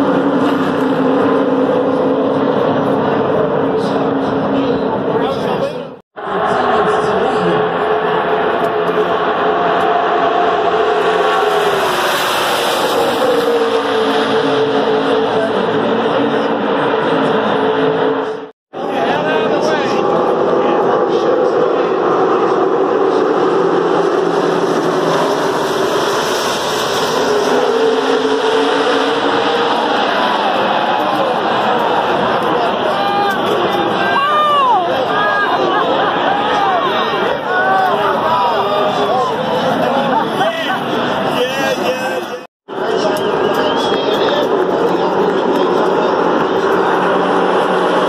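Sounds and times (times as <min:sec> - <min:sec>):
race car engines droning: 0:00.0 - 0:48.0
crowd shouting and yelling: 0:01.3 - 0:24.5, 0:27.5 - 0:48.0.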